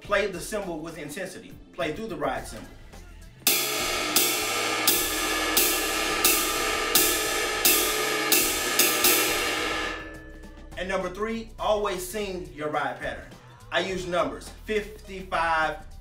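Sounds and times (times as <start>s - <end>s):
ride cymbal swing pattern: 3.4s - 11.2s.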